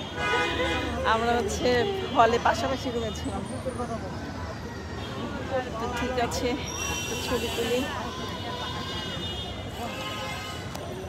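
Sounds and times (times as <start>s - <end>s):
road traffic hum: 0.0s - 11.0s.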